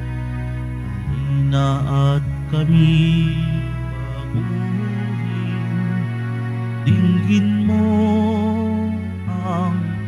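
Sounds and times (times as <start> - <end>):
slow church music: 0.0 - 10.0.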